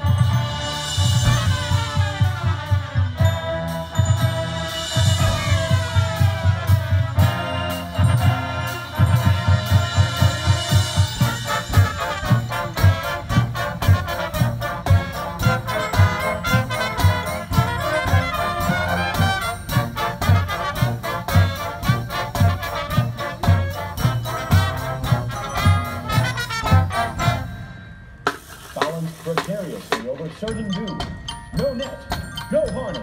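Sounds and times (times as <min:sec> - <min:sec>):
marching band brass: 0:00.0 - 0:30.5
drums keeping steady beat: 0:00.0 - 0:33.0.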